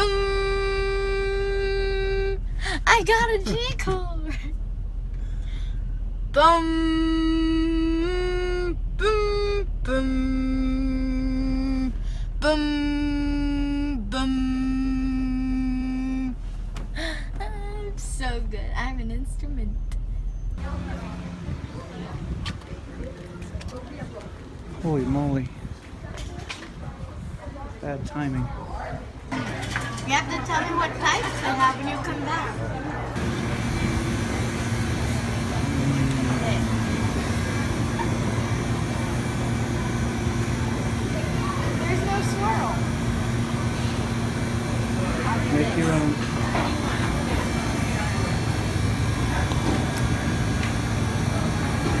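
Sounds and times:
girl singing long notes: 0.0s - 3.3s, 6.3s - 16.4s
car rumble from inside cabin: 0.0s - 23.8s, 33.2s - 52.0s
constant low hum: 0.0s - 52.0s.

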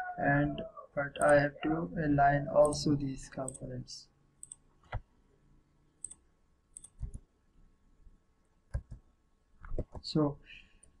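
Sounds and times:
mouse and keyboard clicks: 6.8s - 7.3s, 8.7s - 9.0s.

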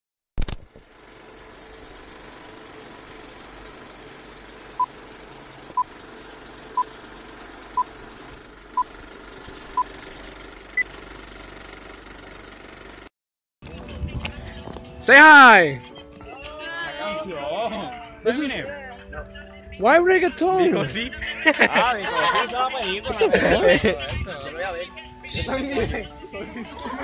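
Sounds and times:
sharp click: 0.4s - 0.7s.

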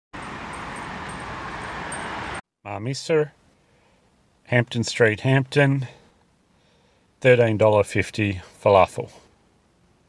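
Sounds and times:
traffic hum: 0.1s - 10.0s.

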